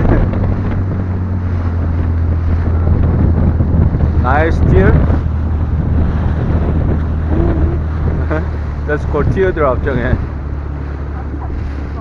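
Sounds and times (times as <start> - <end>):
boat engine drone: 0.0 - 12.0
water rushing along hull: 0.0 - 12.0
wind buffeting microphone: 0.0 - 12.0.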